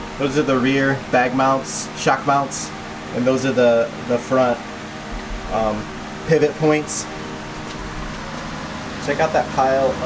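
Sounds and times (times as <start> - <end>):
mechanical hum and hiss: 0.0 - 10.0.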